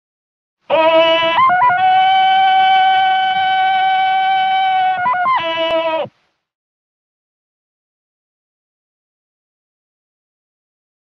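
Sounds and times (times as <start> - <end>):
person singing a long held note: 0.7 - 6.1.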